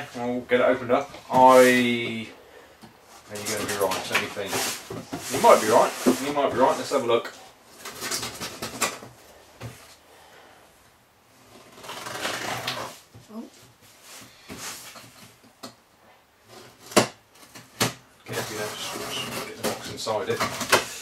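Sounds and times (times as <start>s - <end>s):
cardboard and tape rustling: 0.0s - 2.3s, 3.1s - 10.0s, 11.4s - 15.5s, 16.4s - 21.0s.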